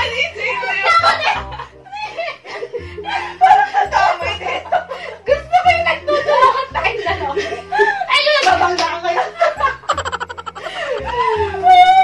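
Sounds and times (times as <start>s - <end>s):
women talking: 0.0s - 1.4s, 3.4s - 9.8s
young women laughing: 0.4s - 8.2s, 9.2s - 12.0s.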